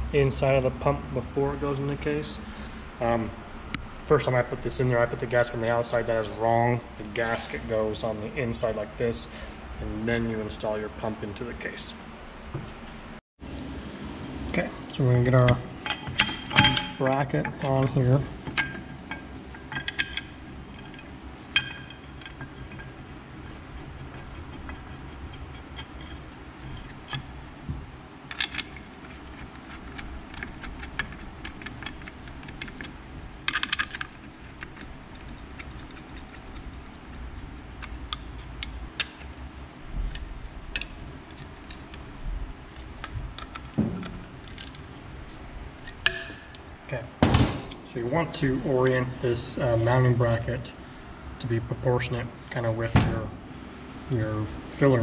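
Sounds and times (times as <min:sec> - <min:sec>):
metal clinks and rattles: 0:15.8 - 0:39.4.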